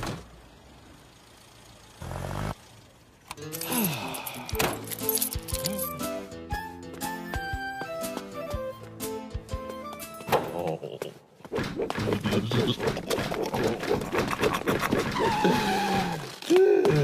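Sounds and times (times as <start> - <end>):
cartoon background music: 5.0 - 10.6.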